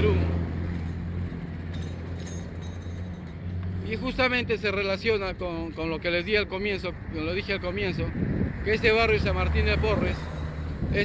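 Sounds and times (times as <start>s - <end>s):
faint street traffic: 0.0s - 11.0s.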